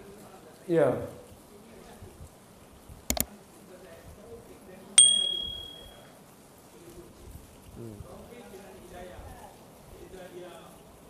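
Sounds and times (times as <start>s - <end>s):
bright bell ding: 5.0s - 6.0s.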